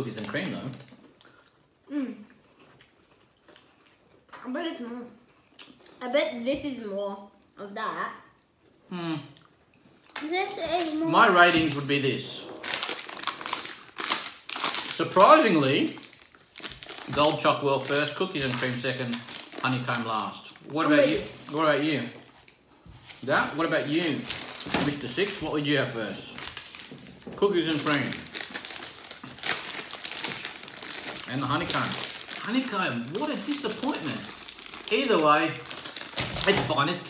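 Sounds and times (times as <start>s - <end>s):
plastic wrappers crinkling: 0.0s - 1.2s, 10.1s - 37.0s.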